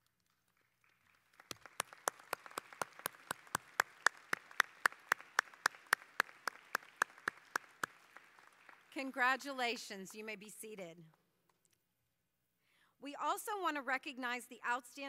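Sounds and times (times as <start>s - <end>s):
sparse crowd applause: 0.0s - 9.3s
close hands clapping steadily: 0.0s - 10.4s.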